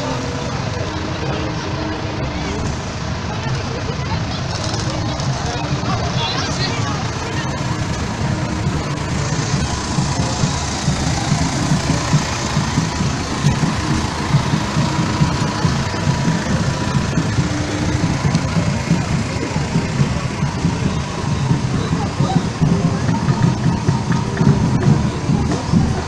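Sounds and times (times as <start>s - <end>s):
crowd chatter: 0.0s - 26.0s
music: 0.0s - 26.0s
tractor diesel engine rumbling: 0.0s - 26.0s.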